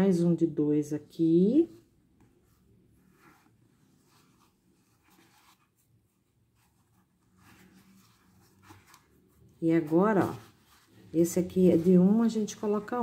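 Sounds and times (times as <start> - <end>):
faint rustles of yarn and hook: 1.4 - 13.0.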